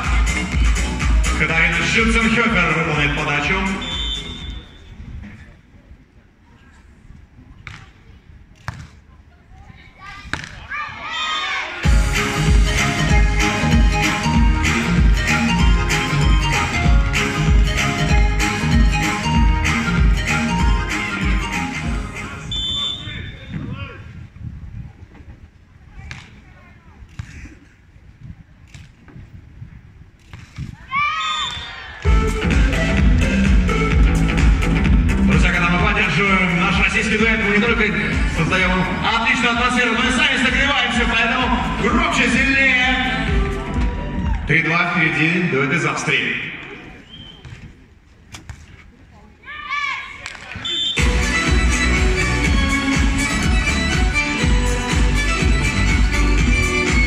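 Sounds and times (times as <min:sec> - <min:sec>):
stadium music over loudspeakers: 0:00.0 - 0:04.9, 0:11.8 - 0:23.6, 0:32.0 - 0:47.1, 0:50.7 - 0:57.0
short call: 0:03.8 - 0:04.9, 0:22.5 - 0:23.5.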